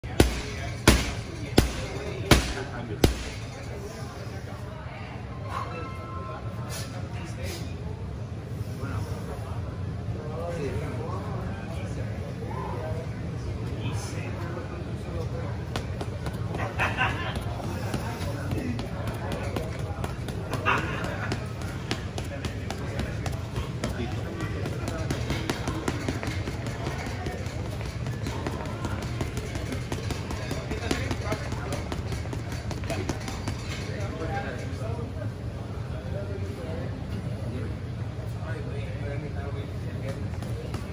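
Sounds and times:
punches thudding on punching bag: 0.0s - 3.5s, 17.3s - 33.8s.

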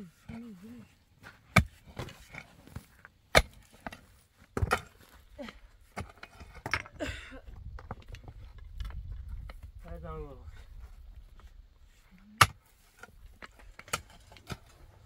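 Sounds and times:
pickaxe striking stony ground: 1.4s - 5.1s, 5.9s - 7.0s, 12.4s - 14.8s.

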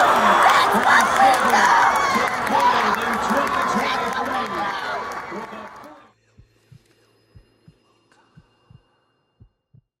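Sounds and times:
heartbeat-like low thumps: 6.3s - 7.8s, 8.4s - 10.0s.

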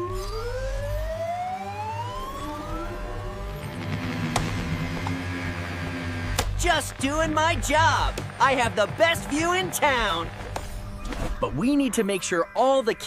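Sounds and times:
background music with low bass: 0.0s - 13.0s.

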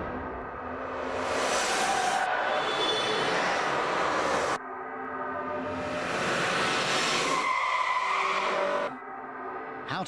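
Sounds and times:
car tyres screeching: 1.0s - 4.6s, 5.7s - 9.0s.

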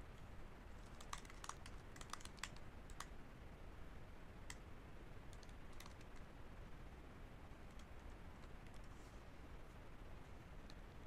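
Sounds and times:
faint keyboard typing: 0.1s - 3.2s, 4.4s - 6.4s, 7.6s - 8.9s.

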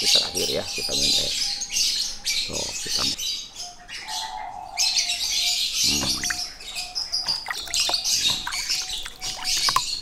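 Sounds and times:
small birds chirping: 0.0s - 10.0s
water splashing in plastic basin: 7.3s - 10.0s.

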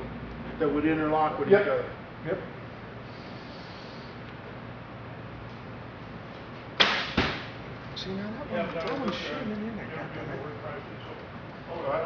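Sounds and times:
arrow thudding into target: 6.8s - 7.6s.

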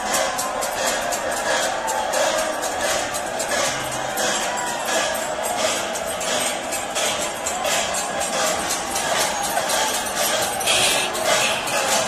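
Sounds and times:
festival crowd din: 0.0s - 12.0s
hand cymbals clashing: 0.0s - 12.0s.

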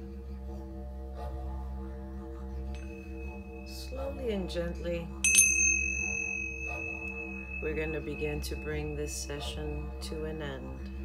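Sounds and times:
low musical drone: 0.0s - 11.0s
small cymbals clinking and ringing: 5.2s - 10.0s.

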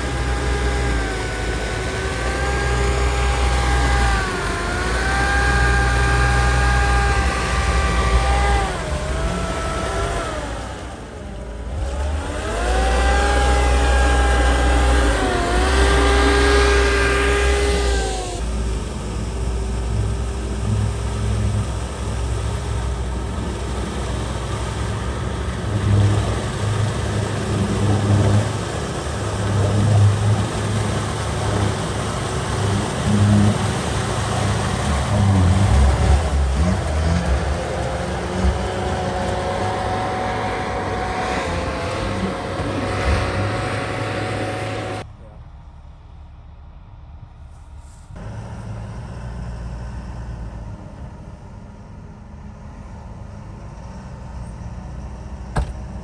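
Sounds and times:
diesel engines revving: 0.0s - 56.0s.

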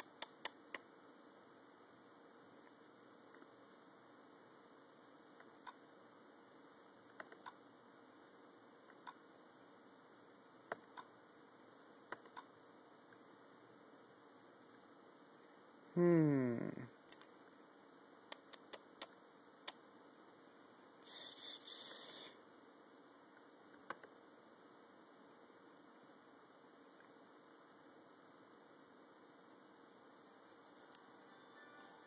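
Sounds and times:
short hiss: 21.0s - 22.4s.

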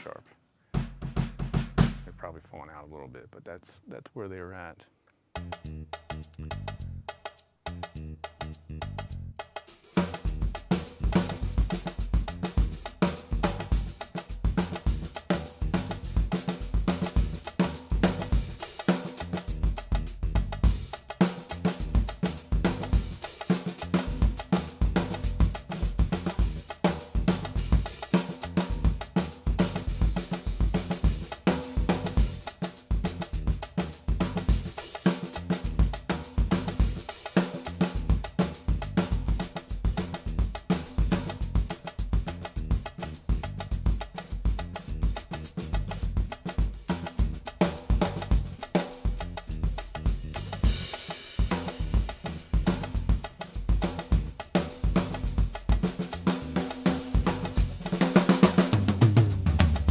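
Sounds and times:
drum kit groove: 0.0s - 2.8s, 5.3s - 59.9s.

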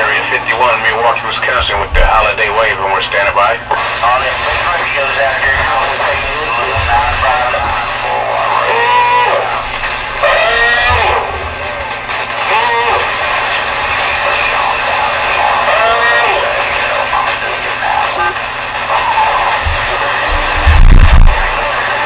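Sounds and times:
low hum: 0.0s - 22.0s
radio band noise: 0.0s - 22.0s
voices over radio: 0.0s - 22.0s.

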